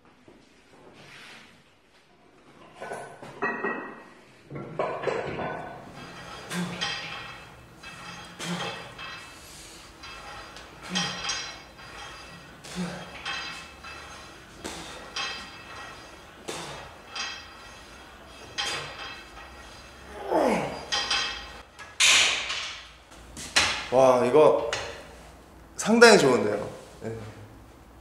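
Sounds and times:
weight stack clanking: 4.5 - 25.2
groan of effort: 20.2 - 20.8.

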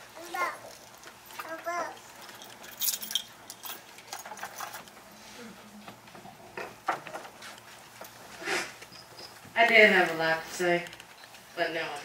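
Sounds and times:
rustles of people moving: 0.0 - 12.0.

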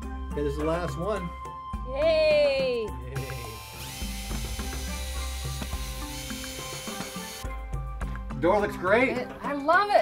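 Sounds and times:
cordless drill driving screw: 3.8 - 7.4.

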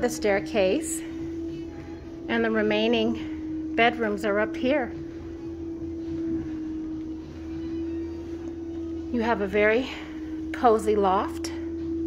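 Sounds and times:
low rumble: 0.0 - 12.0
steady hum: 0.0 - 12.0.

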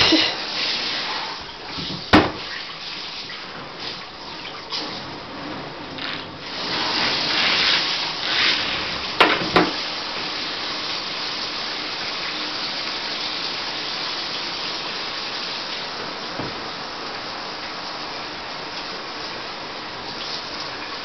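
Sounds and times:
water running in bathtub: 0.0 - 21.0.

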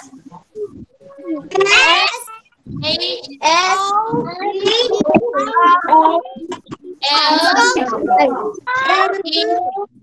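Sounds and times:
children reading aloud in sing-song: 0.0 - 10.0.

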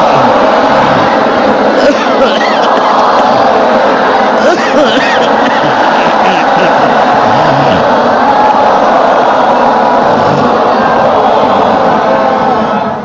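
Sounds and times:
many voices reciting in unison: 0.0 - 12.9.

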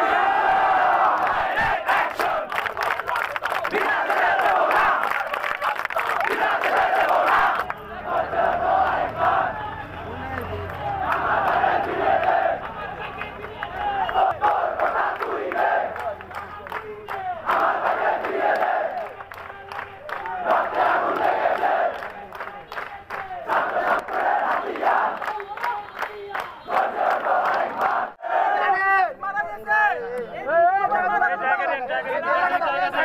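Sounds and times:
crowd of men chanting slogans: 0.0 - 33.0.

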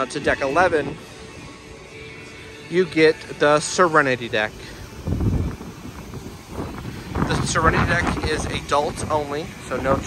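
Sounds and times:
wind buffeting microphone: 4.8 - 10.0.

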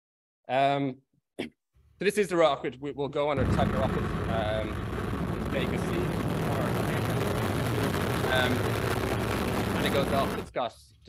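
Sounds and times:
rocket motors roaring: 3.4 - 10.5.

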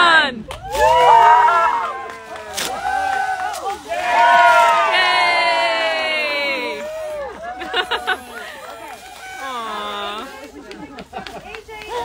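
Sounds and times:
crowd cheering: 0.5 - 10.8.

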